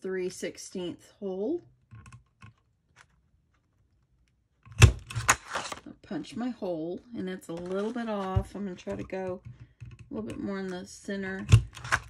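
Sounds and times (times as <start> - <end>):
hand punch clacking through paper: 11.4 - 12.0.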